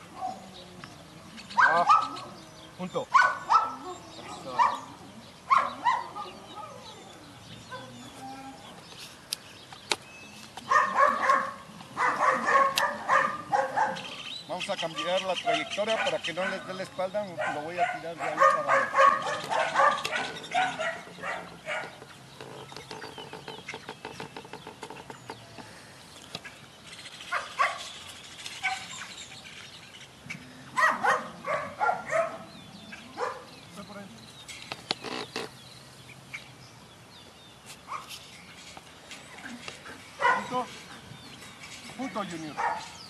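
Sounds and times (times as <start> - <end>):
dog barking: 1.6 - 2.2, 3.1 - 4.9, 5.5 - 6.8, 10.7 - 14.2, 15.0 - 22.0, 27.3 - 27.8, 30.8 - 32.5, 33.2 - 33.5, 40.2 - 40.7, 42.6 - 43.0.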